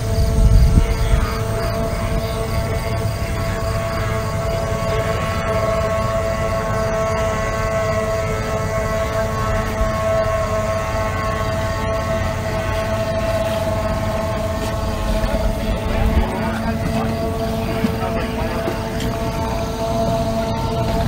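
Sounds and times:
outboard engines at high revs: 0.0s - 21.0s.

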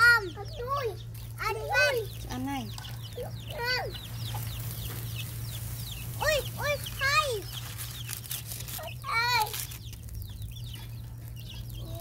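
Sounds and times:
chickens clucking: 0.0s - 12.0s
high chick peeps: 0.0s - 12.0s.

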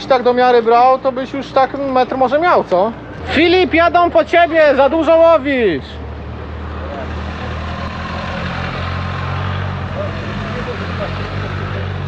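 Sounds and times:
vehicle engine driving past: 3.0s - 12.0s.

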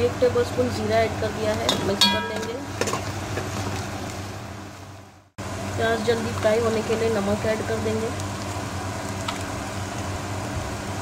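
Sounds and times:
low steady hum: 0.0s - 11.0s
onions sizzling in oil: 0.2s - 11.0s.

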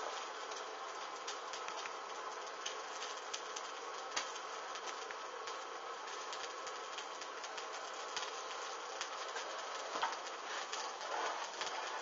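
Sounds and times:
flames crackling and popping: 0.0s - 12.0s
steady fire hiss: 0.0s - 12.0s.

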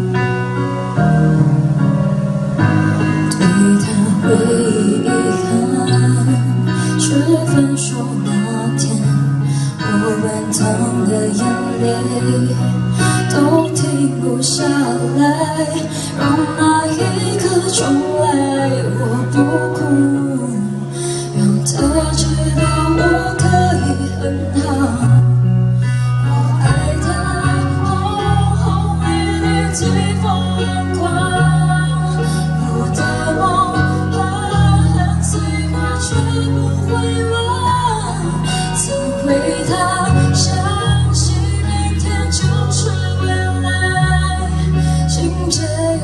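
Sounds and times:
live band playing slow ballad: 0.0s - 46.0s
woman singing: 3.3s - 46.0s.

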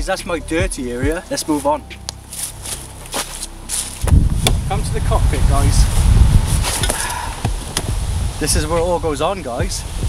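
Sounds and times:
low rumble: 2.0s - 10.0s
rustling: 5.8s - 7.0s.

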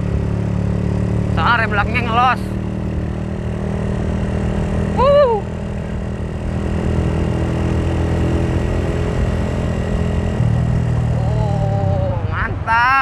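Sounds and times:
motorcycle engine running: 0.0s - 12.5s
road and wind noise: 0.0s - 13.0s.

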